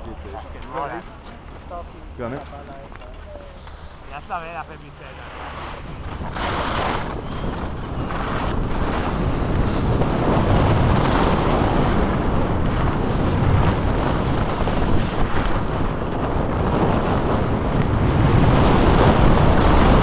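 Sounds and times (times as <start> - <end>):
wind rushing over microphone: 3.2 - 20.0
skis hissing on snow: 5.1 - 9.7.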